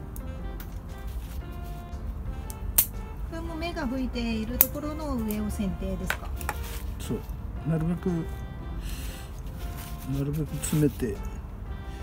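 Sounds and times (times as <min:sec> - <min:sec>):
background music: 0:00.0 - 0:12.0
pruning shears snipping branch: 0:04.5 - 0:06.9.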